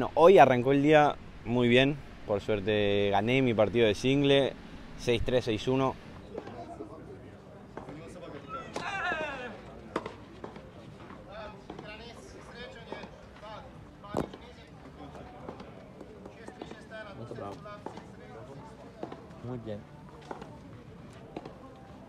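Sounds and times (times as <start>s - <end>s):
voices talking: 0.0s - 22.0s.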